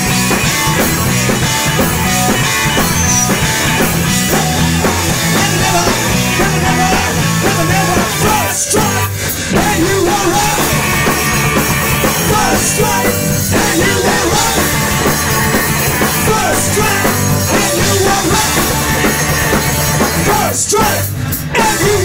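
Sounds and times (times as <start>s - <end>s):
bass guitar: 0.0s - 22.0s
drum kit: 0.0s - 22.0s
electric guitars: 0.0s - 22.0s.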